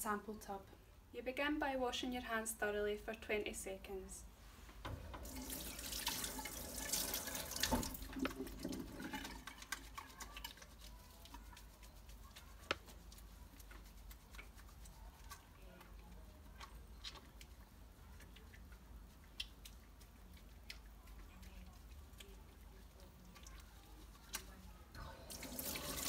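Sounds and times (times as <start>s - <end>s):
water running into a steel sink: 5.1s - 10.3s, 25.1s - 26.0s
hands rubbing: 8.2s - 20.6s.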